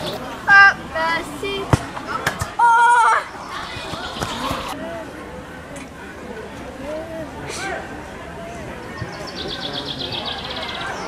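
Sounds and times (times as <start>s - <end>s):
children calling and shouting: 0.0s - 11.0s.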